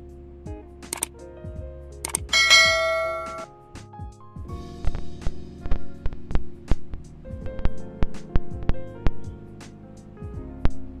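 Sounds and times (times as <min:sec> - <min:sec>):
background music: 0:00.0 - 0:11.0
sharp clicks: 0:00.9 - 0:01.1, 0:02.0 - 0:02.6
bright bell ding: 0:02.3 - 0:03.5.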